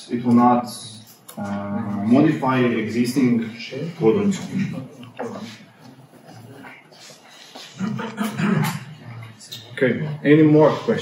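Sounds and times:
faint murmuring voices: 0:01.0 - 0:11.0.

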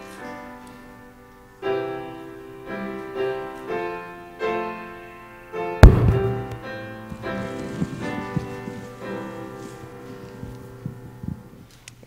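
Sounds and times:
piano chord: 0:00.0 - 0:11.7
soft low thumps: 0:05.8 - 0:09.0.

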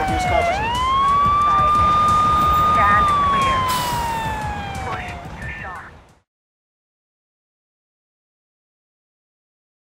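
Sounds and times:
police siren wail: 0:00.0 - 0:05.9.

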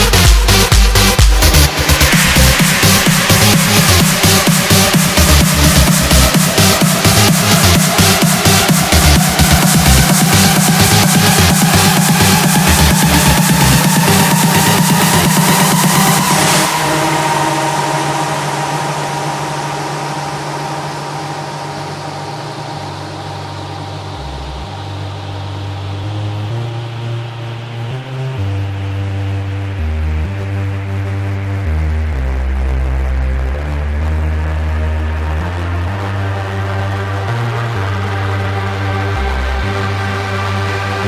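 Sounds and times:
house music full band: 0:00.0 - 0:24.4
slow bass notes: 0:00.0 - 0:41.0
sustained synth chords: 0:00.0 - 0:41.0
downward noise sweep: 0:01.4 - 0:28.3.

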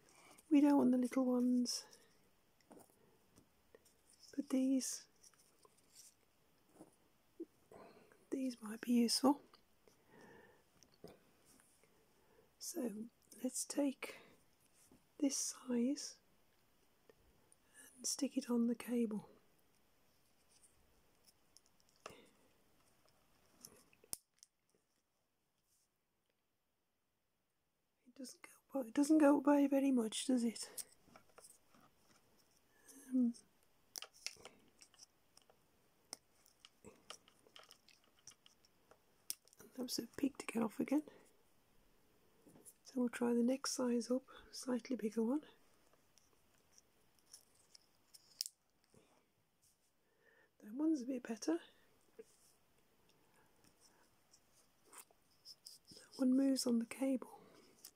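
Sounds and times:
faint handling noise: 0:00.0 - 0:12.1, 0:30.2 - 0:41.4, 0:45.5 - 0:50.0, 0:52.0 - 0:57.9
plastic clicks: 0:33.9 - 0:39.6.

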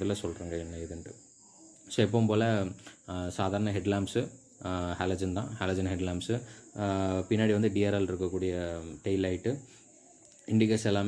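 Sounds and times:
man talking: 0:00.0 - 0:01.2, 0:01.9 - 0:09.7, 0:10.4 - 0:11.0
faint high-pitched hiss: 0:00.0 - 0:11.0.

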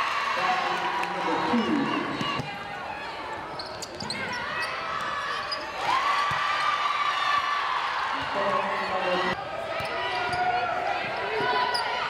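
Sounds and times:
sneakers squeaking: 0:03.3 - 0:06.5, 0:08.2 - 0:12.0.

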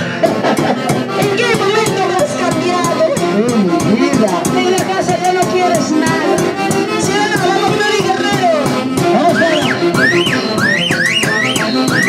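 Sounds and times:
folk dance band playing: 0:00.0 - 0:12.0.

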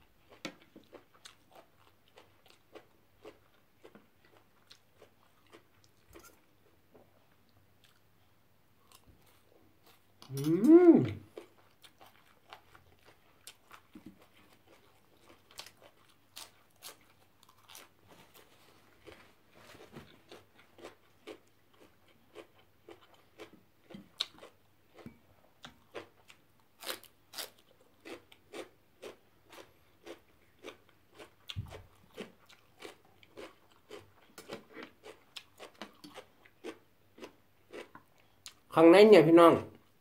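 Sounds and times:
chewing crunchy celery: 0:00.2 - 0:38.7.

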